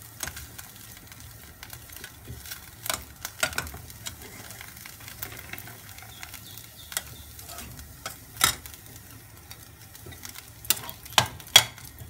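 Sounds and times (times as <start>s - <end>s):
spatula scraping metal pan: 7.4s - 8.6s.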